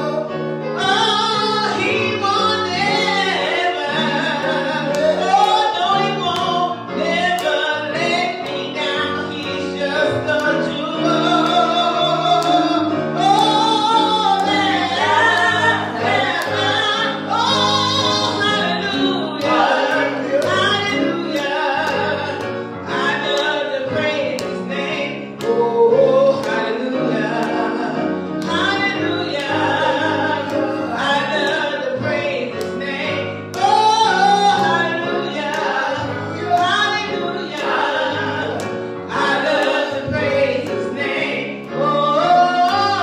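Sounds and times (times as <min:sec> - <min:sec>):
low musical accompaniment: 0:00.0 - 0:43.0
woman singing into a microphone: 0:00.8 - 0:43.0.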